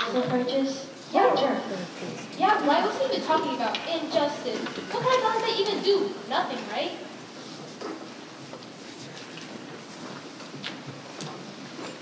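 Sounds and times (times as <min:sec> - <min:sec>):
young person speaking: 0:00.0 - 0:07.1.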